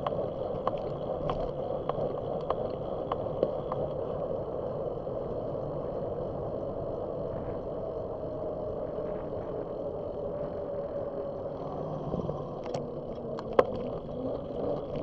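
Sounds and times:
bicycle tyres on asphalt: 0:00.0 - 0:06.3
wind on microphone: 0:00.0 - 0:15.0.

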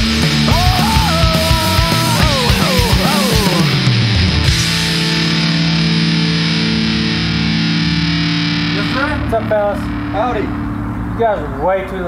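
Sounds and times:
distorted electric guitar chord: 0:00.0 - 0:11.6.

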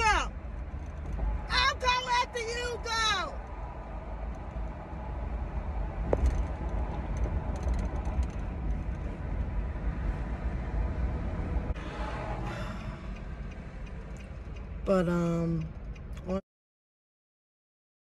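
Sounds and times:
car engine and road noise: 0:00.0 - 0:16.4.

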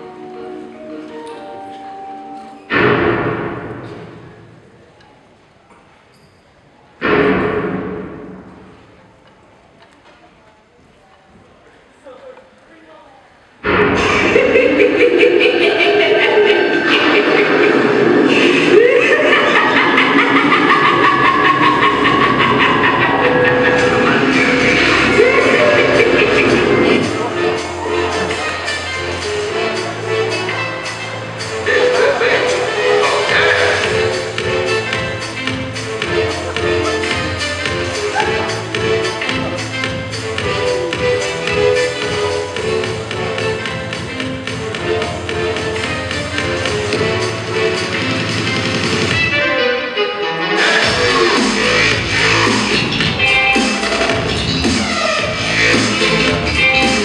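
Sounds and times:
dance music with steady beat: 0:15.7 - 0:49.3, 0:50.7 - 0:57.0.

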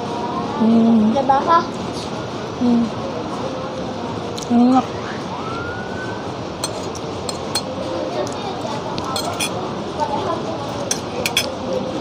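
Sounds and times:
faint voices: 0:00.0 - 0:12.0
cutlery clinking on plates: 0:06.6 - 0:07.8, 0:09.0 - 0:09.6, 0:10.9 - 0:11.6.

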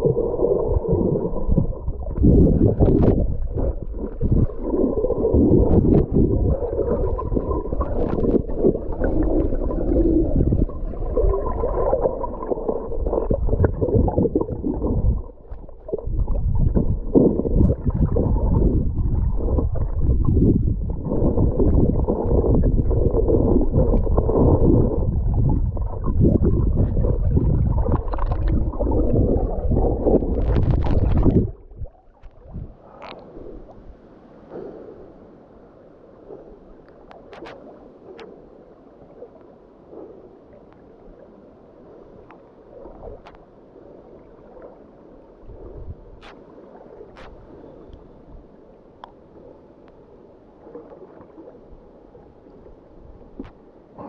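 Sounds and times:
muffled underwater churning: 0:00.0 - 0:54.0.

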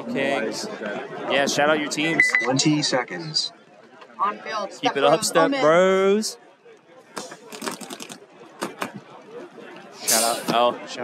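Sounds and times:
faint background chatter: 0:00.0 - 0:11.0
sharp clicks or pops: 0:07.2 - 0:09.0.

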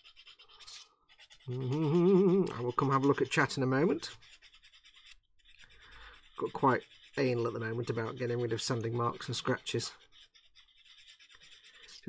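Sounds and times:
sanding stick rubbing plastic: 0:00.0 - 0:12.0.

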